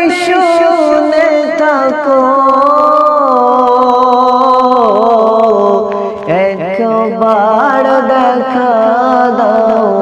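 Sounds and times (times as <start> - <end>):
men singing long held notes: 0.0 - 10.0.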